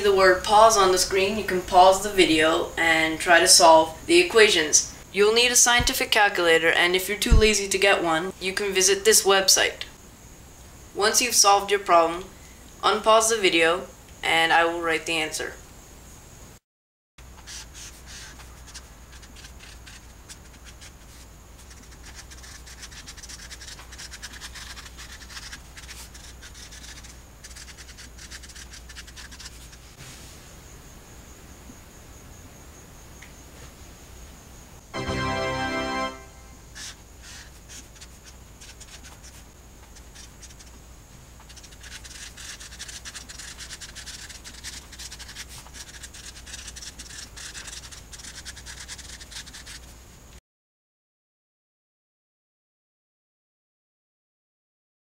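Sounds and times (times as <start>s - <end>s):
marker scratching on paper: 17.4s - 30.0s, 36.7s - 40.8s, 41.4s - 49.9s.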